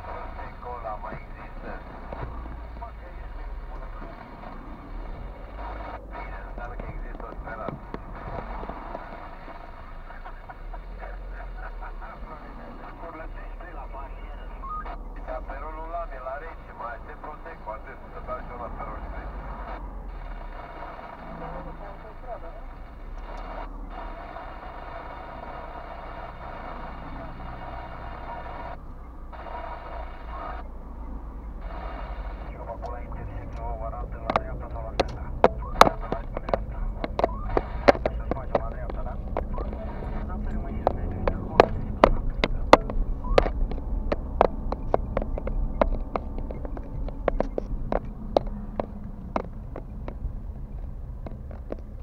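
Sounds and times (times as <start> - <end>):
car engine and road hum: 0.0 - 52.0
voices on car radio: 0.0 - 52.0.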